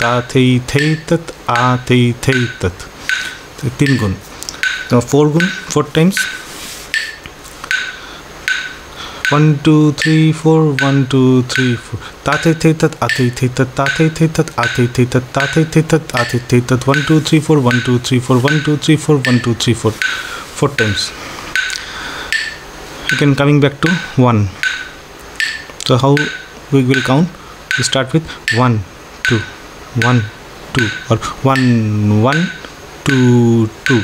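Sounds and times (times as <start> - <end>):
metronome clicks with ringing tone: 0.0 - 20.2, 20.8 - 34.0.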